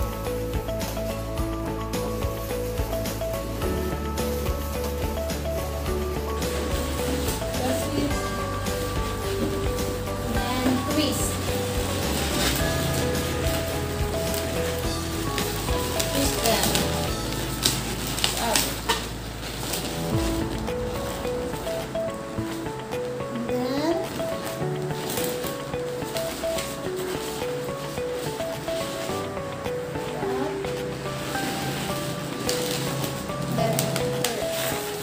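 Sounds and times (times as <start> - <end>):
background music: 0.0 - 35.0
balloons rubbing and squeaking: 0.0 - 35.0.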